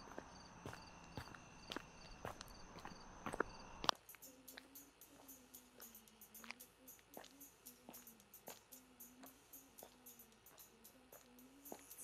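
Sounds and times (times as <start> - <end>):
footsteps on pavement: 0.0 - 10.6.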